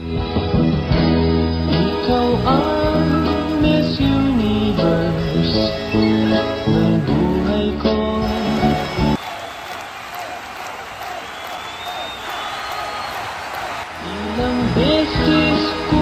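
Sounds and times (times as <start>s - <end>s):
song with a melody: 0.0s - 9.2s, 14.0s - 16.0s
audience applauding and cheering: 2.6s - 16.0s.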